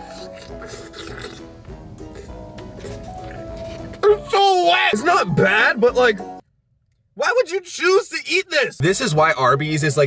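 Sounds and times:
background music with steady beat: 0.0 - 6.4.

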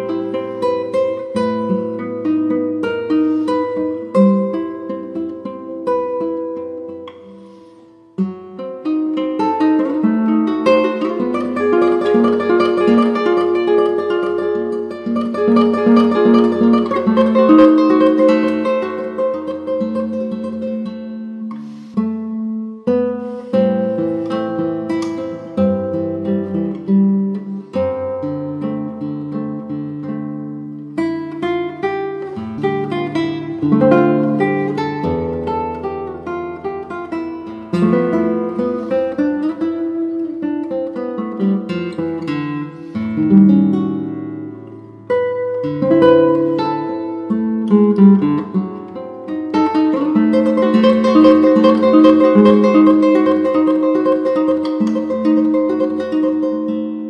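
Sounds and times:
classical guitar playing: 0.0 - 57.0.

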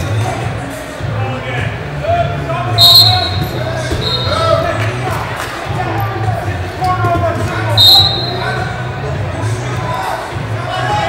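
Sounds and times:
voices calling and shouting: 1.1 - 11.0
shrill whistle blasts: 2.8 - 4.5, 7.8 - 8.5.

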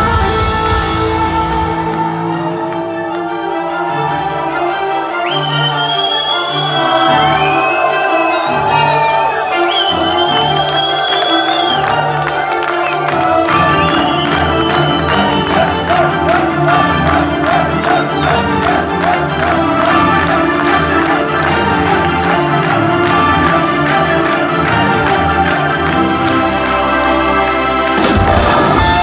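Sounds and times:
drums: 0.0 - 2.2, 27.8 - 29.0
heavy metal band playing live: 0.0 - 2.3, 28.0 - 29.0.

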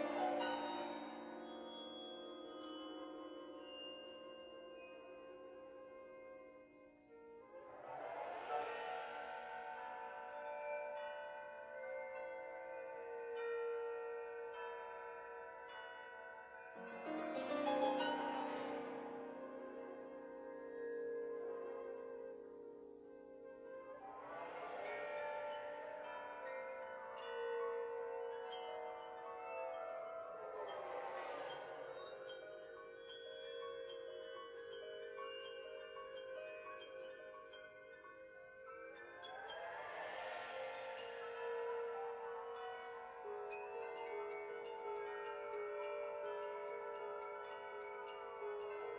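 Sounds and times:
wind ensemble bell-like tones: 0.0 - 48.9
bright shimmering wash: 7.5 - 22.1, 36.0 - 48.9.

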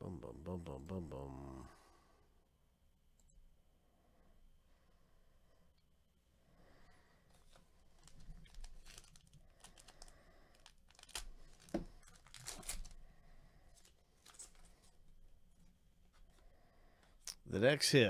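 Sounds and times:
foil wrapper tearing and crinkling: 8.0 - 13.0.

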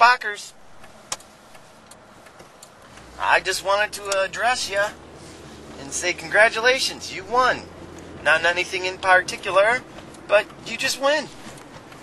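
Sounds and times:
car cabin hum and hiss: 0.0 - 12.0.

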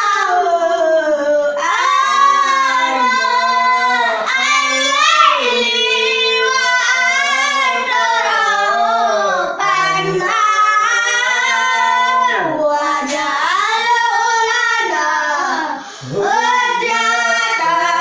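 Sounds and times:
children and man singing: 0.0 - 18.0.

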